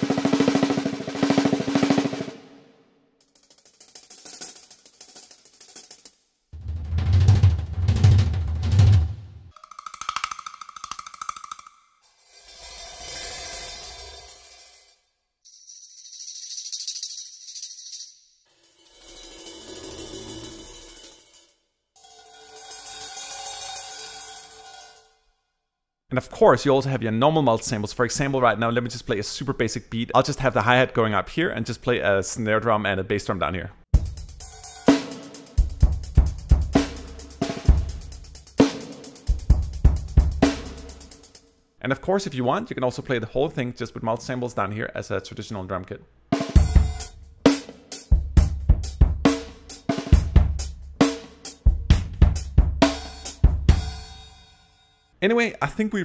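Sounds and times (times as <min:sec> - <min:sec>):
acoustic drum strokes: 0:00.0 - 0:02.6, 0:03.2 - 0:14.9, 0:18.6 - 0:21.4, 0:22.0 - 0:25.1, 0:34.0 - 0:41.4, 0:46.4 - 0:54.4
deep bass drum: 0:06.6 - 0:09.4, 0:50.2 - 0:50.8, 0:51.7 - 0:52.9
hissy cymbal: 0:12.2 - 0:15.0, 0:22.0 - 0:25.0.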